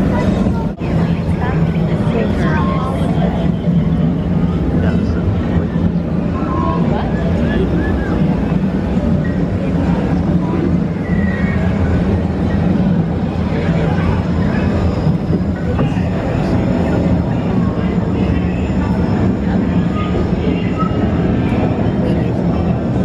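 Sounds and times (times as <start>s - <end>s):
murmur of voices: 0.0s - 23.0s.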